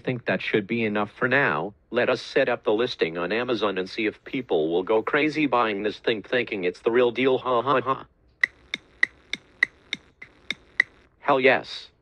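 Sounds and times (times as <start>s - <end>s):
clock ticking: 8.4s - 11.1s.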